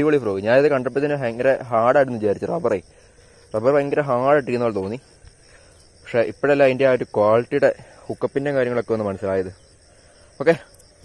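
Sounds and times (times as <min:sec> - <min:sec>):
man speaking: 0:00.0 - 0:02.9, 0:03.5 - 0:05.1, 0:06.0 - 0:09.6, 0:10.4 - 0:10.8
high-pitched insect chorus: 0:00.0 - 0:11.0.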